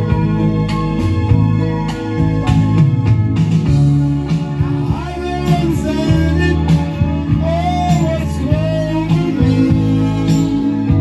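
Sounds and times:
backing music with guitar: 0.0 - 11.0
man singing into a microphone: 4.8 - 11.0.

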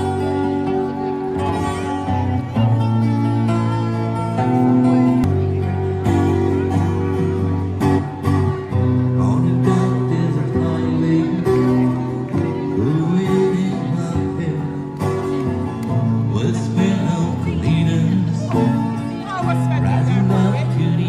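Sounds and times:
amplified acoustic guitar: 0.0 - 21.0
man singing: 8.7 - 15.4, 16.0 - 21.0.

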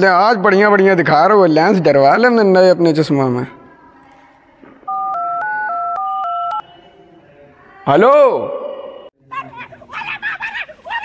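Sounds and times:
touch-tone keypad beeps: 4.9 - 6.6.

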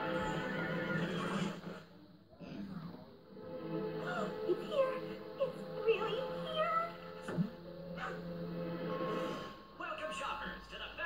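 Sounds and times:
cartoon background music: 0.0 - 1.9, 2.8 - 11.0.

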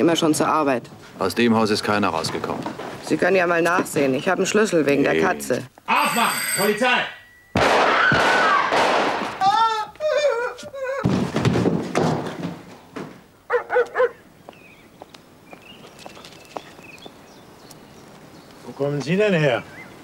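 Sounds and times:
woman screaming: 9.4 - 11.1
dog barking: 13.5 - 14.2.

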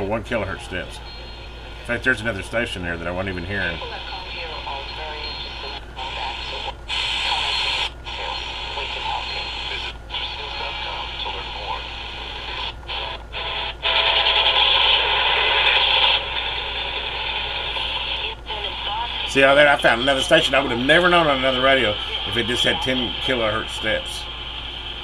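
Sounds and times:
steady low hum: 0.0 - 25.0
voice on radio: 1.9 - 13.6, 17.6 - 24.3
radio static and interference: 1.9 - 25.0.

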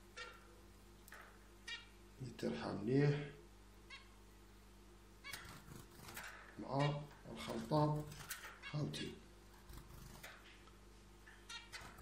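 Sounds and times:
man talking: 2.2 - 3.4, 6.6 - 9.2
fingers scratching on ceramic plate: 9.6 - 10.4.

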